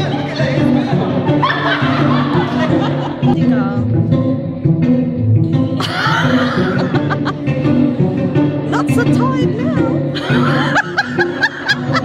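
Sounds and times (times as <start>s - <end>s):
music over sound system: 0.0s - 12.0s
person laughing: 5.8s - 7.5s, 9.6s - 12.0s.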